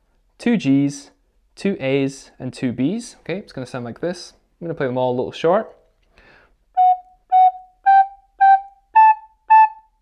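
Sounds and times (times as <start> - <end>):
recorder playing short notes: 6.8 - 9.9.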